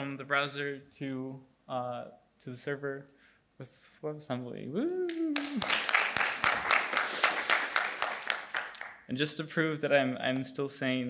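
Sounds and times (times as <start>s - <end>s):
audience applauding: 5.1s - 9.0s.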